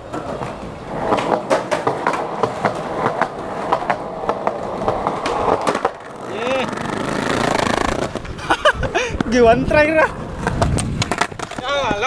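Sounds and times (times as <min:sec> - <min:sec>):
skateboard wheels rolling on concrete: 0:00.0 - 0:12.0
wheels clicking over pavement joints: 0:00.0 - 0:12.0.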